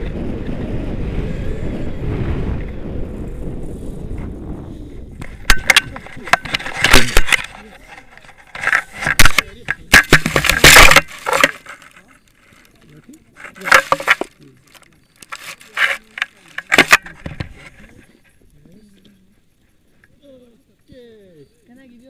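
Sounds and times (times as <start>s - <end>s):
wind rushing on microphone: 0.0s - 7.6s.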